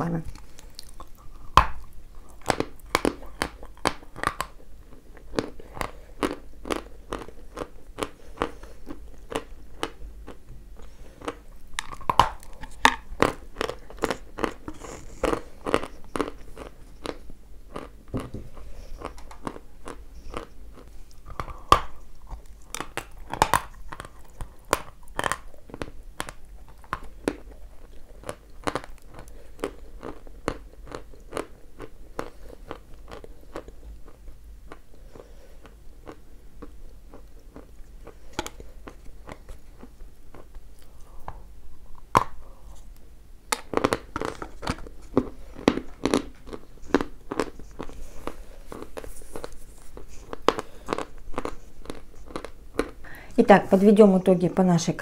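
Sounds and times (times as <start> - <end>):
person chewing crunchy clay: 0.0 - 53.4.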